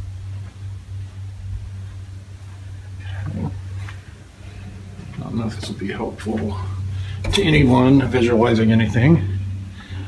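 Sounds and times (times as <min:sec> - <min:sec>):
steady low-pitched hum: 0:00.0 - 0:10.0.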